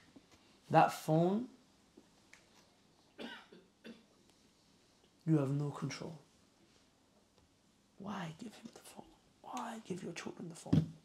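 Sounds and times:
person coughing: 3.2 - 4.1.

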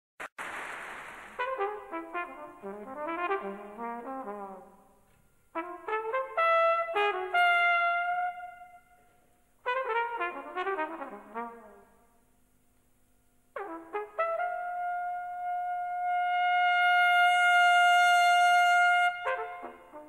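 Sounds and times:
jazz trumpet playing: 1.3 - 11.9, 13.6 - 20.0.

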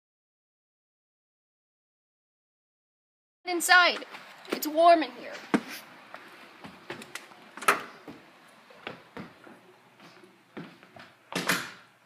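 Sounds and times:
footsteps: 3.8 - 11.5.

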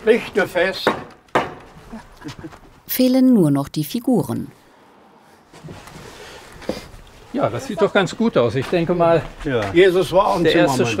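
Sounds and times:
hammer knocking on wood: 0.8 - 1.7.

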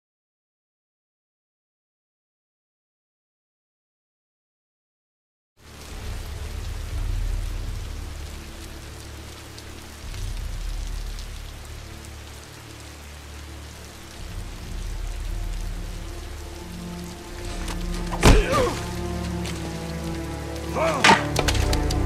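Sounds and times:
heavy rain falling: 5.6 - 22.0
low background music: 5.6 - 22.0.

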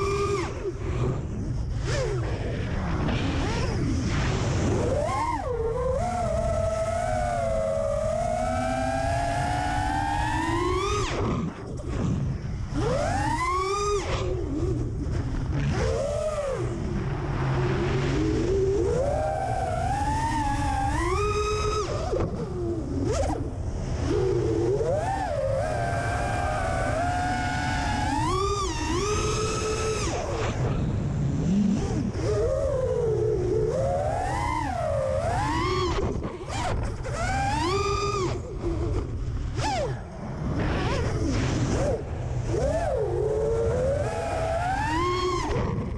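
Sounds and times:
drone motors whining: 0.0 - 45.9.

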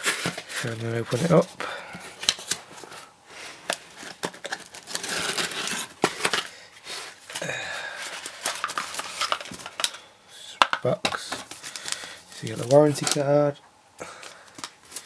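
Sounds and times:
paper leaflets shuffled: 0.0 - 10.0, 11.1 - 13.3.

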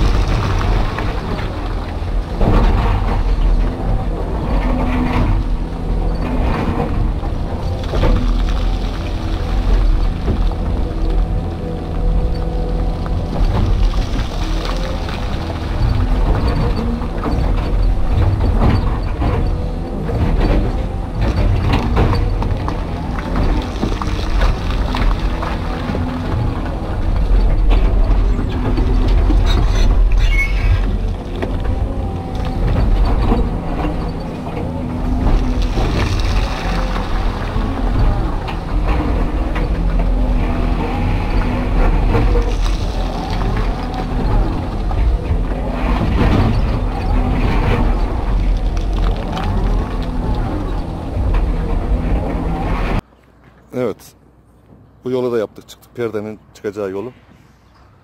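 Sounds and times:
excavator engine and hydraulics: 0.0 - 58.0.

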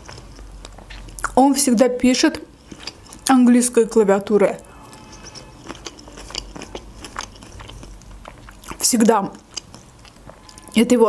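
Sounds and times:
wet mouth clicks: 0.0 - 1.4, 4.9 - 10.7
chewing crunches: 0.0 - 3.4, 4.2 - 10.8.

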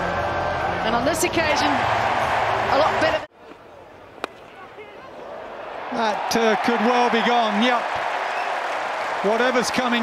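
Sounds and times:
stadium crowd noise: 0.0 - 10.0
cricket bat striking ball: 4.2 - 4.5.

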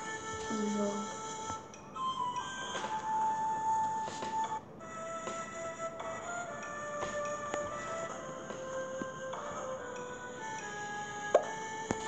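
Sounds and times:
steady high tone: 0.0 - 4.2.

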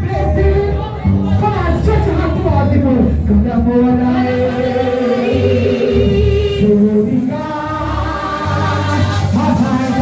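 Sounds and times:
congregation singing: 3.6 - 10.0
woman singing into microphone: 3.9 - 6.8.

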